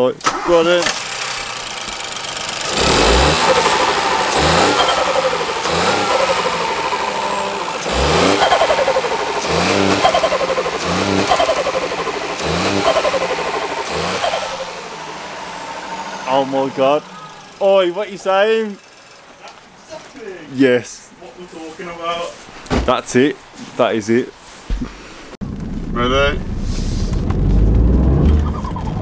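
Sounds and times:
car engine revving: 0:00.2 - 0:19.4, 0:25.4 - 0:29.0.

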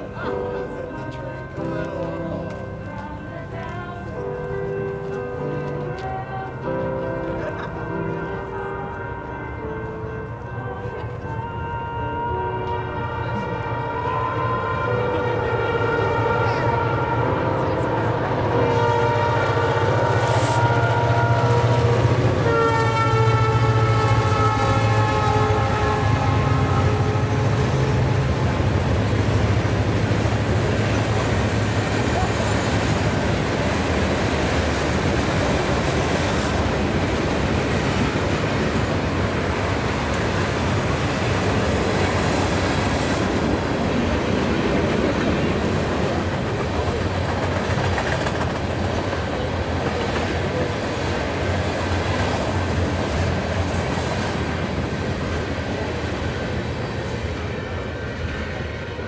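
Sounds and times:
train horn blasts: 0:08.2 - 0:28.6.

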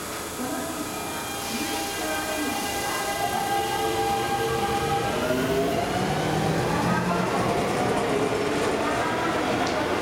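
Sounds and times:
electric train rumbling: 0:00.0 - 0:10.0.

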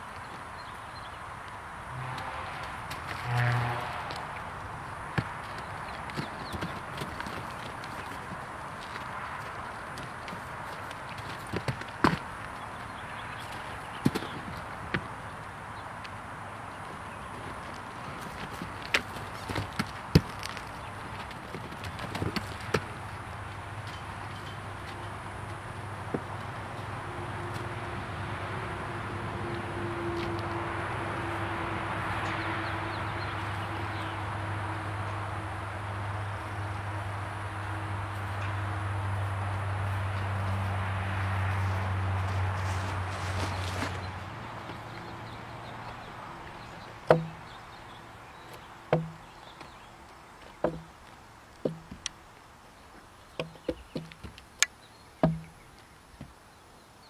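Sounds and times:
horse hooves knocking on logs: 0:01.9 - 0:16.2, 0:16.8 - 0:28.0, 0:42.9 - 0:47.8, 0:48.4 - 0:52.2, 0:53.3 - 0:56.4.

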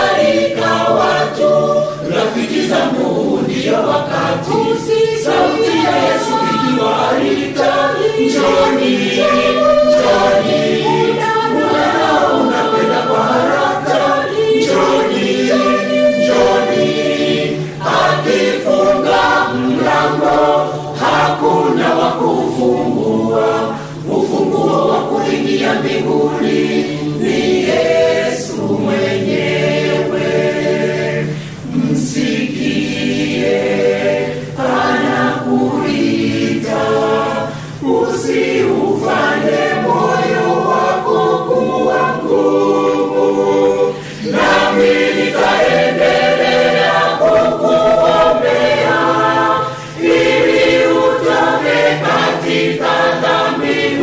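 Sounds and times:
mixed choir singing a hymn: 0:00.0 - 0:54.0.

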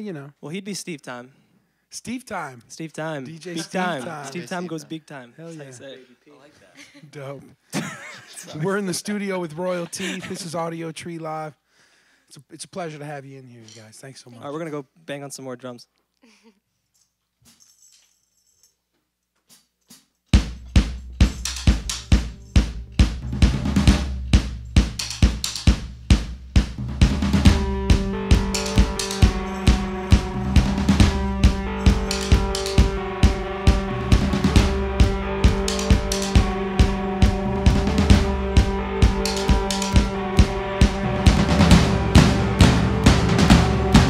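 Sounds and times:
drum kit steady beat: 0:03.6 - 0:04.6, 0:20.4 - 0:44.0
electric guitar held notes: 0:27.5 - 0:44.0.

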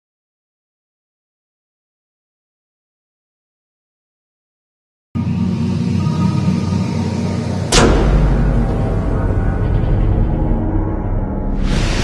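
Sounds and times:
deep bass rumble: 0:05.2 - 0:12.0
low drone with held tone: 0:05.2 - 0:12.0.

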